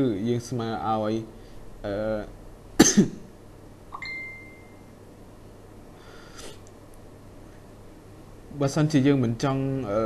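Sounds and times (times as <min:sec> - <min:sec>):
person coughing: 0:02.8 - 0:03.3
thin high tone: 0:03.9 - 0:04.9.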